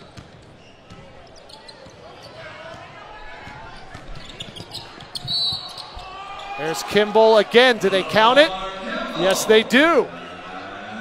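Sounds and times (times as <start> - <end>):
sneakers squeaking: 0.0 - 6.6
murmur of crowd: 0.0 - 11.0.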